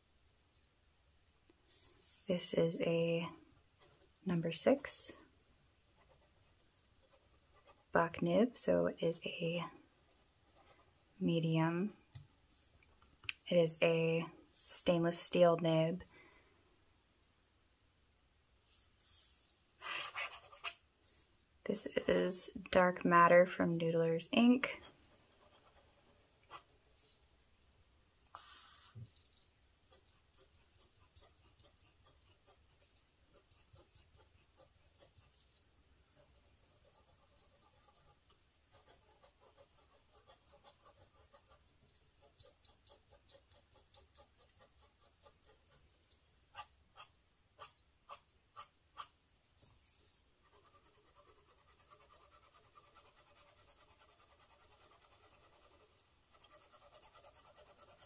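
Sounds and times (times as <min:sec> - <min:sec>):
pen nib scratching on paper: 0:28.3 - 0:49.1, 0:50.4 - 0:58.0.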